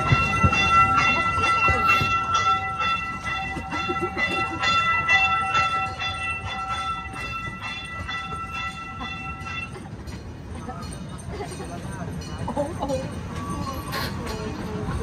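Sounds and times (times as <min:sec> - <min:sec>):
small train rumbling on track: 0:00.0 - 0:15.0
train bell ringing: 0:00.0 - 0:15.0.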